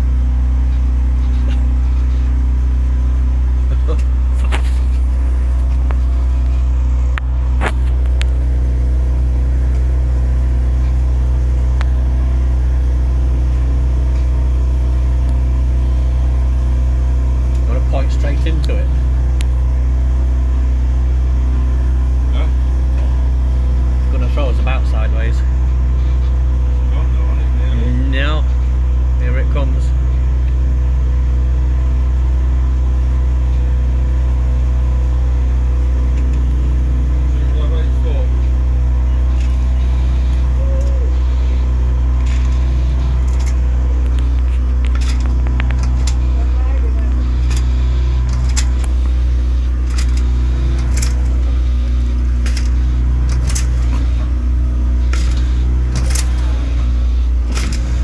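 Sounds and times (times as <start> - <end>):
boat motor droning: 0.0 - 58.0.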